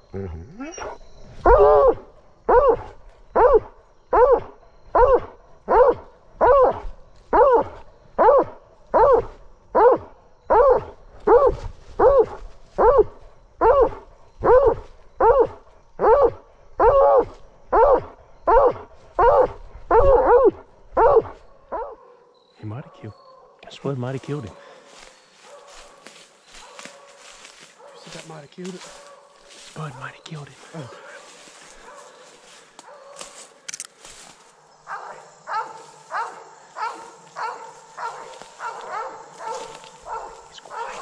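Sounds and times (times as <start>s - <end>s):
hound barking: 0.7s - 23.6s, 24.4s - 29.8s, 30.9s - 33.5s, 34.8s - 41.0s.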